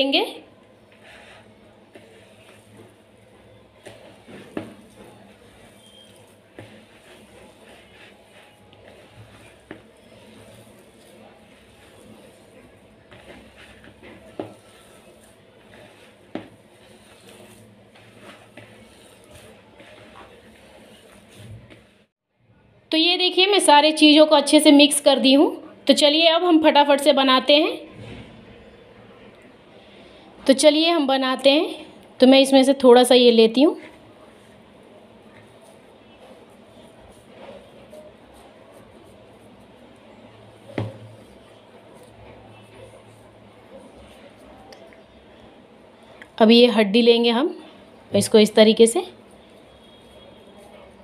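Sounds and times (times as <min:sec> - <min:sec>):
hand squishing food mixture: 0:00.5 - 0:22.1, 0:32.0 - 0:46.4, 0:47.5 - 0:51.0.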